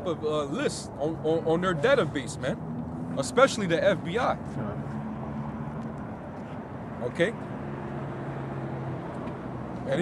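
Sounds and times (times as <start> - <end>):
motor traffic engine drone: 0.0 - 10.0.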